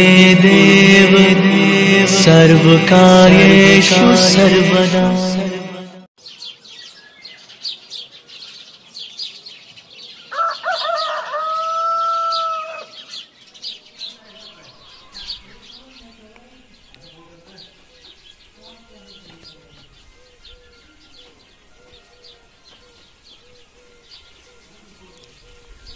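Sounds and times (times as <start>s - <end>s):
small birds chirping: 6.2s - 25.9s
rooster crowing: 10.3s - 13.1s, 14.2s - 15.6s, 20.6s - 24.8s.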